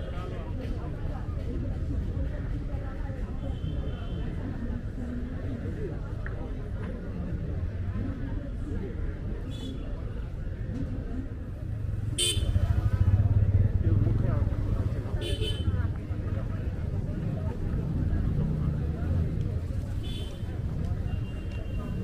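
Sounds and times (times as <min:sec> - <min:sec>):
road traffic rumbling: 0:10.2 - 0:22.0.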